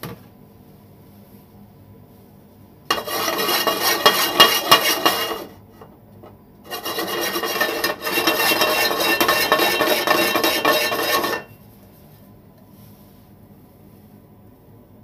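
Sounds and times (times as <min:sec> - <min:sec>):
frying pan scraping on stove grate: 0:02.9 - 0:05.6, 0:06.7 - 0:11.6.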